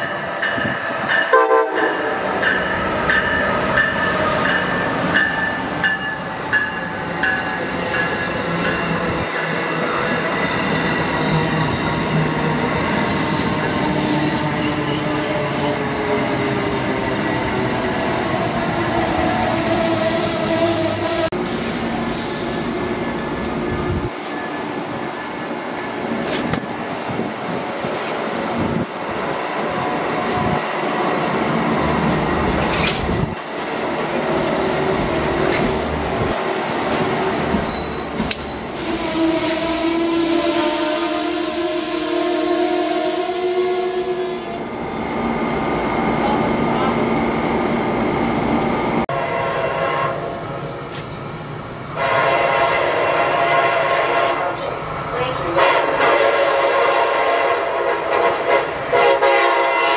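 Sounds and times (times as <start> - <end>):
train wheels rumbling and clattering: 0.0 - 40.6
train horn: 1.3 - 2.4, 38.8 - 44.8, 49.1 - 50.4, 52.0 - 59.9.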